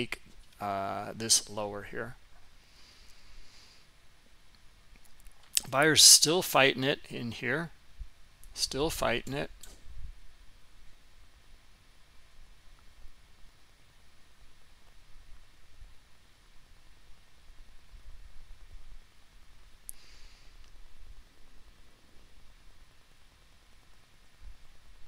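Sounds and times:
faint low hum: 0.0 - 25.0
soft hiss: 0.0 - 25.0
sharp click: 9.2 - 9.9.

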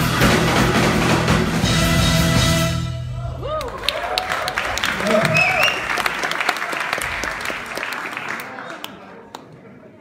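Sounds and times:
drums and cymbals: 0.0 - 3.4
rock band playing live: 0.0 - 3.4.

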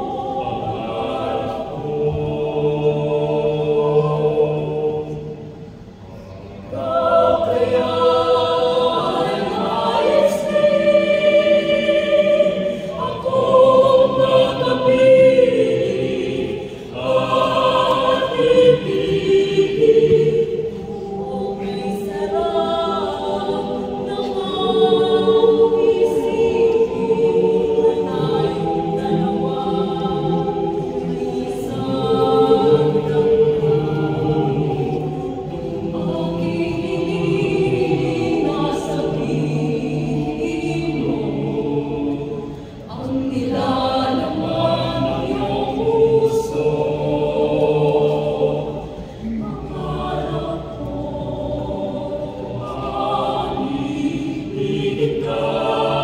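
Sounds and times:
mixed choir singing in harmony: 0.0 - 56.0.

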